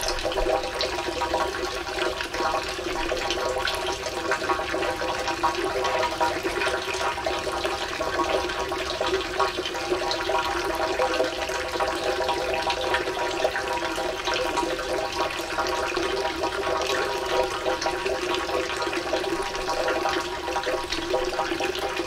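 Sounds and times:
water pouring into stone basins: 0.0s - 22.0s.

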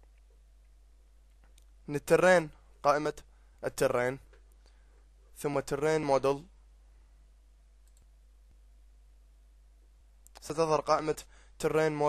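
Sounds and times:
faint computer mouse clicks: 7.8s - 8.1s.

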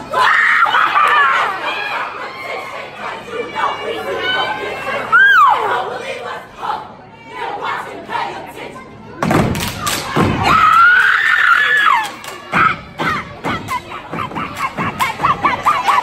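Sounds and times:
crowd voices: 0.0s - 16.0s.

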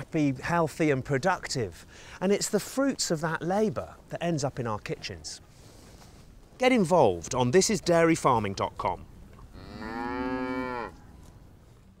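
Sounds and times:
cow mooing: 9.5s - 11.0s.

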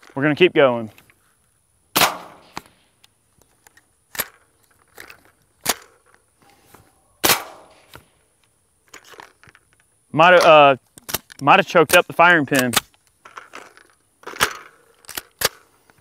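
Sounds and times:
suppressed gunshots: 1.9s - 2.7s, 7.2s - 8.0s
gun action clicks: 12.5s - 15.7s.

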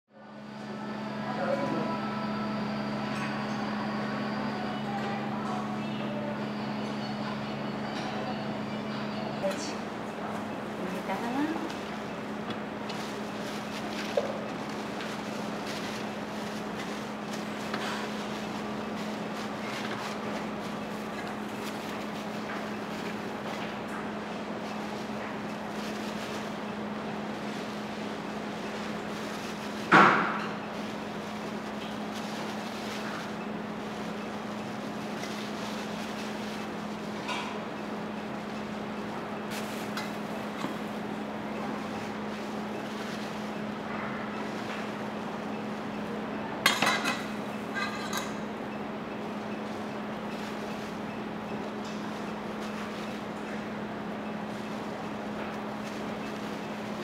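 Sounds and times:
background hubbub: 0.1s - 29.9s
low mechanical hum: 0.1s - 57.0s.

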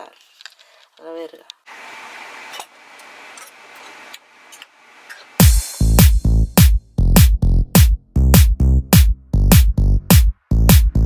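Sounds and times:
faint steady hiss: 0.4s - 5.4s.

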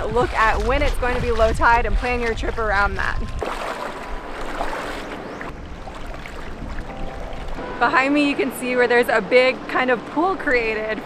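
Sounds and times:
water sloshing around wading legs: 0.0s - 11.0s.

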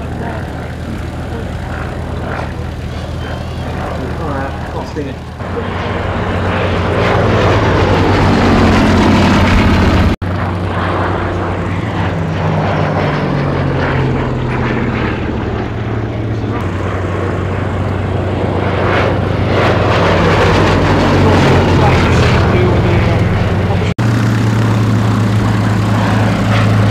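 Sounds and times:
propeller plane engine in flight: 0.0s - 26.9s.

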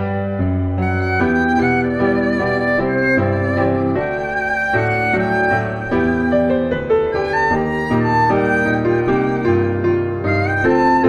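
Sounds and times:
piano chords: 0.0s - 11.0s
erhu bowed melody: 0.6s - 11.0s.

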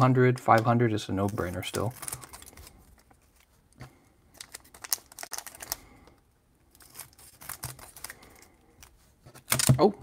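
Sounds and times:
foil packs crinkling: 1.2s - 3.5s, 4.3s - 8.5s.

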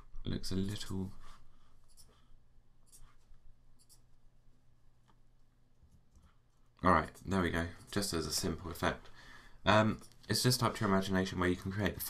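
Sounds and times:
computer mouse clicks: 1.8s - 2.2s, 3.8s - 4.1s.

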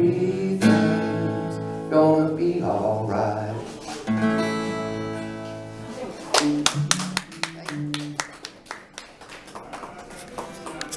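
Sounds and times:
small group clapping: 6.1s - 10.9s.

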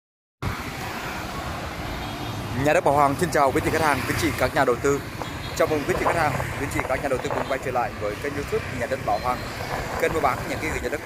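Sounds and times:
scooters and cars passing: 0.4s - 11.0s.

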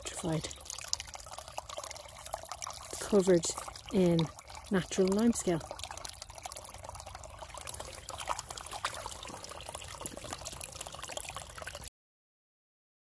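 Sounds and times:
spring water trickling and dripping: 0.0s - 11.9s.

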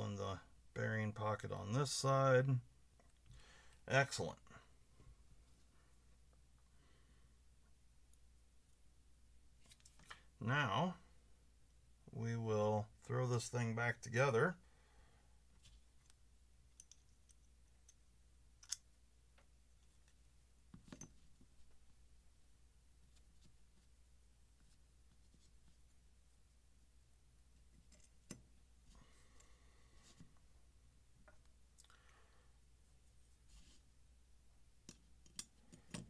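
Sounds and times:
soft rustle: 15.5s - 16.3s, 19.4s - 31.8s, 32.4s - 34.4s
small metal clicks: 16.7s - 18.0s, 18.6s - 18.9s, 34.8s - 36.0s.

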